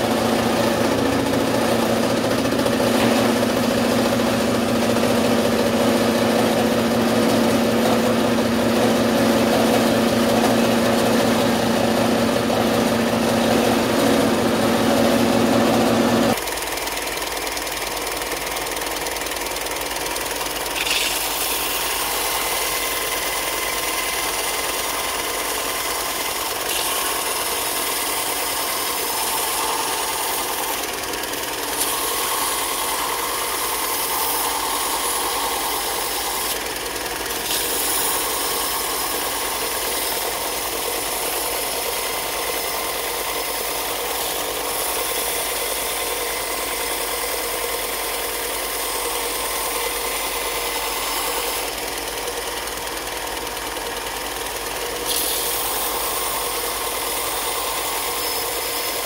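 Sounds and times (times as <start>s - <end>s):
belt sander hissing: 0.0s - 16.4s, 20.4s - 59.0s
bandsaw humming: 0.0s - 17.2s, 17.8s - 59.0s.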